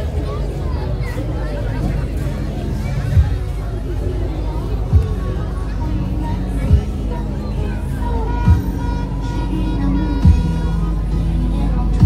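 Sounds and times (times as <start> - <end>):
music with held notes: 0.0 - 12.0
voices: 0.0 - 12.0.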